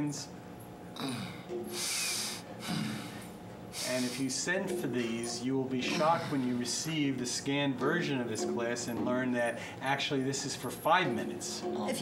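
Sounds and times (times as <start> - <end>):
heavy breathing: 1.0 - 4.4, 9.6 - 9.8.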